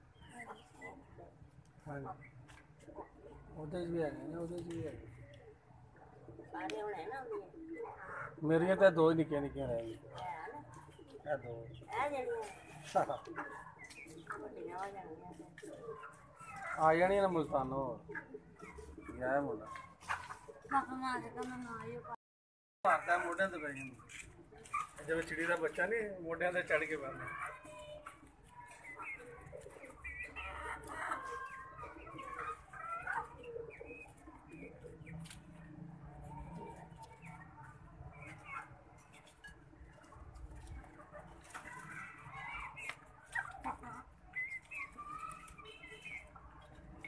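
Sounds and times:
chickens clucking and calling: 0:00.0 - 0:22.2, 0:22.9 - 0:47.0.

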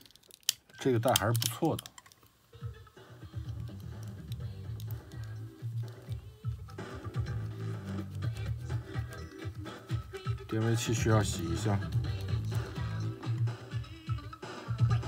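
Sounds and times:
music from cassette tape: 0:00.8 - 0:15.0.

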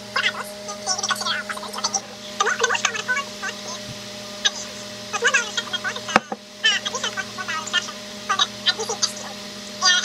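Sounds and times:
low electrical hum: 0:00.0 - 0:10.0
garbled voice-like chatter: 0:00.2 - 0:10.0.

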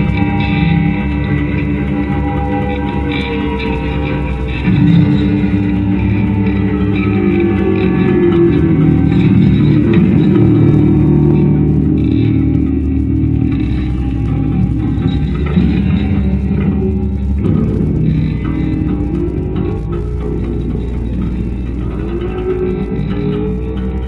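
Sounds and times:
electric guitars through amplifiers: 0:00.0 - 0:24.0.

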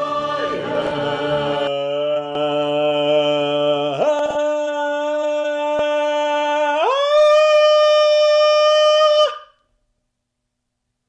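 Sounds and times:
man singing a high note: 0:01.6 - 0:09.4.

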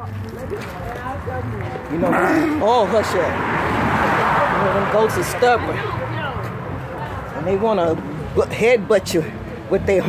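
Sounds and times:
faint people talking: 0:00.0 - 0:10.0
outdoor noise: 0:00.0 - 0:10.0.

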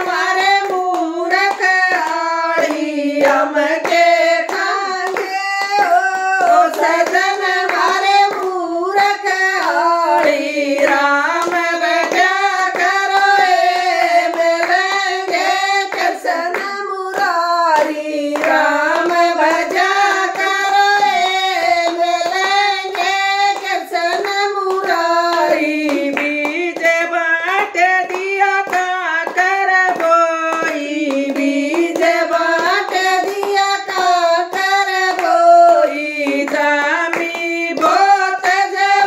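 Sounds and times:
hand claps: 0:00.0 - 0:39.0
women singing devotional song: 0:00.0 - 0:39.0.

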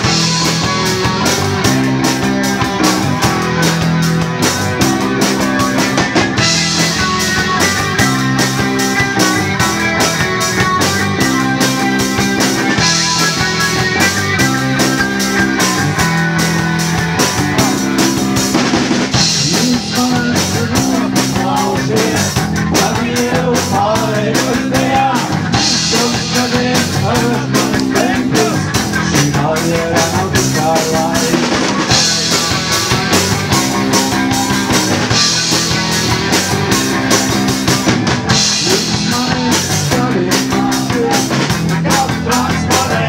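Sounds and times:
rock band playing: 0:00.0 - 0:43.0.

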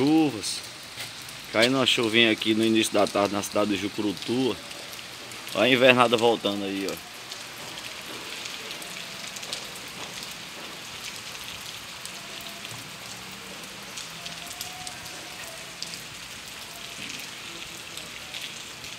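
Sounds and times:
rain on wet pavement: 0:00.0 - 0:18.9.

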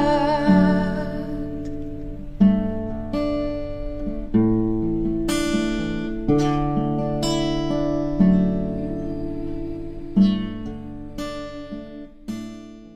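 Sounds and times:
acoustic guitar slow chords: 0:00.0 - 0:12.9.

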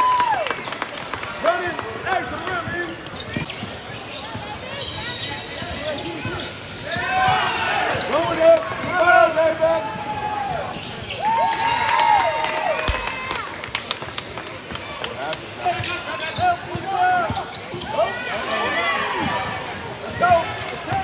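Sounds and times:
voices of players and spectators: 0:00.0 - 0:21.0
sneaker squeaks: 0:01.0 - 0:11.5, 0:15.6 - 0:21.0.

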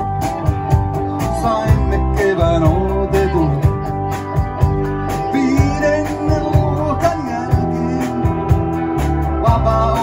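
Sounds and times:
lead guitar bending notes: 0:00.0 - 0:10.0
live rock band playing: 0:00.0 - 0:10.0.

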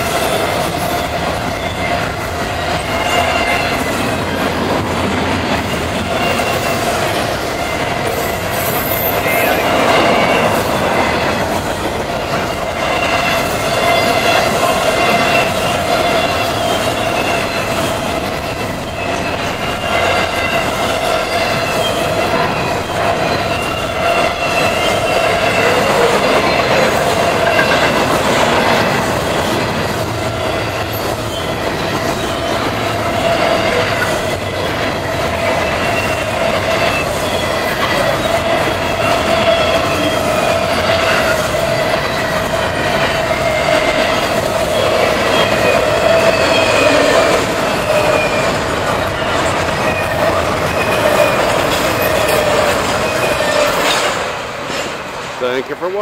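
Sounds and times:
wheel squeal: 0:00.0 - 0:55.6
train cars rumbling past: 0:00.0 - 0:56.0.

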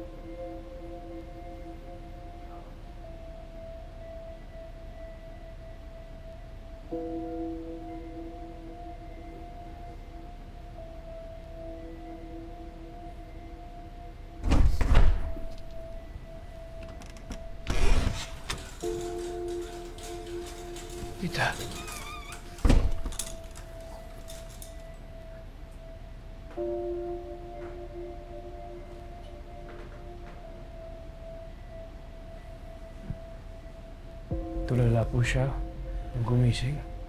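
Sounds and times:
soft music with held chords: 0:00.0 - 0:37.0.

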